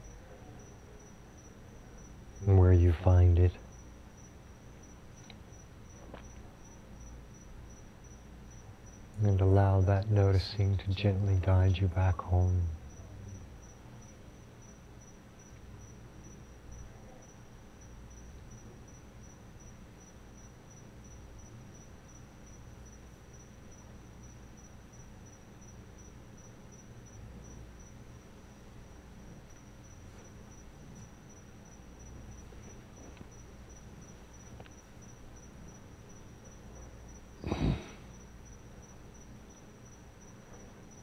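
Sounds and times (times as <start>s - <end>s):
high-pitched pulsing insect trill: 0.0s - 41.0s
low room rumble: 0.0s - 41.0s.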